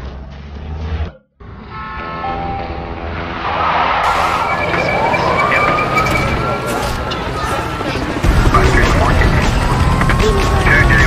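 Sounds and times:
rushing vehicle noise: 3.1s - 11.0s
police siren wailing: 4.0s - 11.0s.

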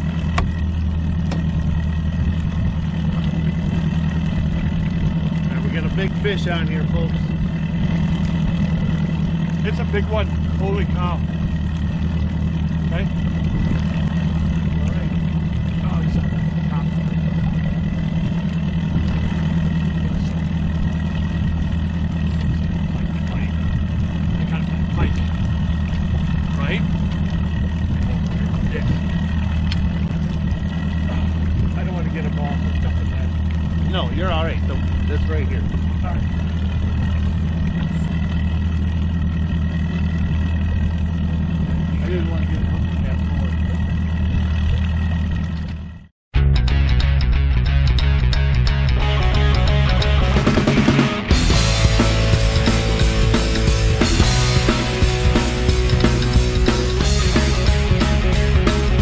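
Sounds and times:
outboard motor running: 0.0s - 59.0s.

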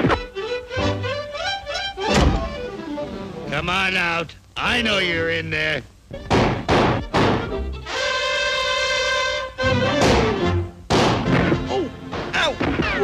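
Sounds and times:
cartoon music with bending note: 0.0s - 3.5s, 6.1s - 13.0s
crash and whack effects: 10.9s - 13.0s.

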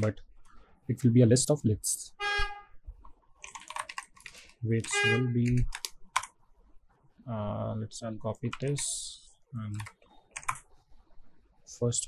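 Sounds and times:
computer keyboard clicks: 3.4s - 4.5s, 5.5s - 6.4s, 9.7s - 10.6s
pitched tone: 4.9s - 5.3s.

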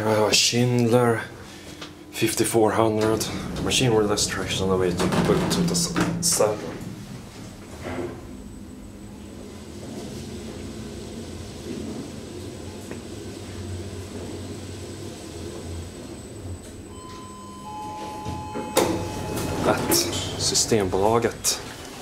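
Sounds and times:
elevator hum with high whine: 0.0s - 22.0s
elevator doors knock: 3.0s - 6.7s, 18.0s - 20.4s
two-tone electronic chime: 16.9s - 20.0s.

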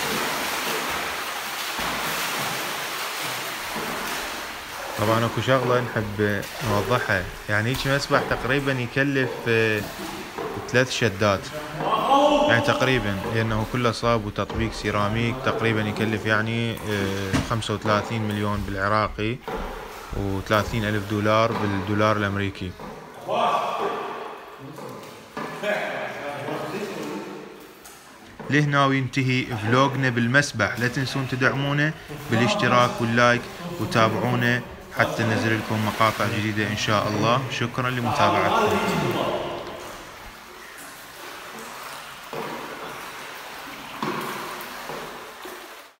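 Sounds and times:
pool water splashing: 0.0s - 46.0s.

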